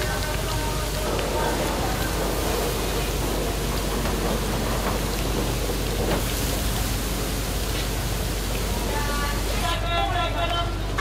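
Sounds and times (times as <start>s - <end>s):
oil sizzling while deep-frying: 0.0s - 11.0s.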